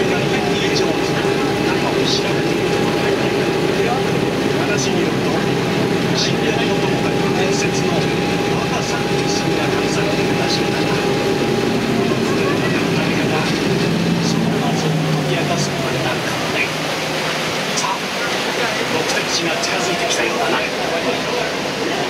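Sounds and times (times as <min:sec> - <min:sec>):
boat engine drone: 0:00.0 - 0:22.0.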